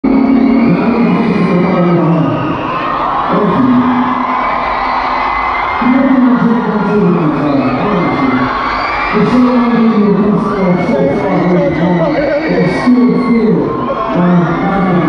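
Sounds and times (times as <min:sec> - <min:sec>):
crowd cheering and singing along: 0:00.0 - 0:15.0
live music from stage: 0:00.1 - 0:15.0.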